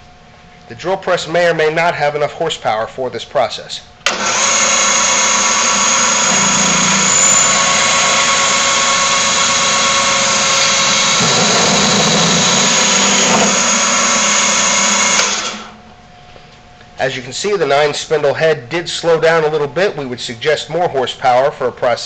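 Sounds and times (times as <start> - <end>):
drill press whining: 4.0 - 15.8
drill bits cutting plastic: 4.1 - 15.8.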